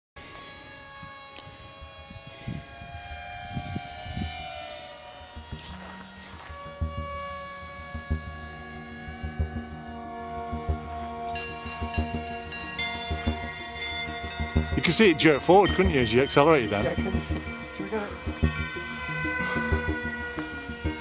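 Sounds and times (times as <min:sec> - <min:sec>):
model plane motor whining: 0:00.2 - 0:21.0
music of sustained tones: 0:00.2 - 0:21.0
wind thumping on microphone: 0:03.4 - 0:04.3.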